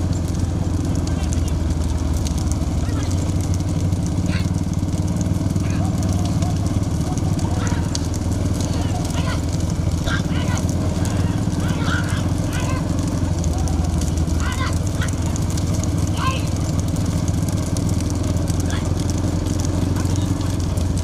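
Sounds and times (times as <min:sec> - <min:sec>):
motorcycle engines droning: 0:00.0 - 0:21.0
men shouting: 0:02.6 - 0:17.4, 0:18.2 - 0:21.0.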